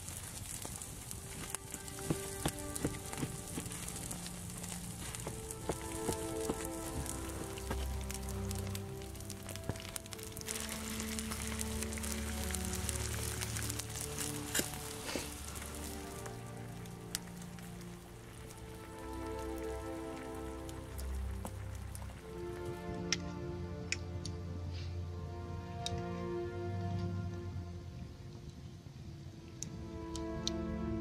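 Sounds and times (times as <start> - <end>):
food sizzling in a pan: 0.0 - 22.2
background music with held notes: 0.1 - 31.0.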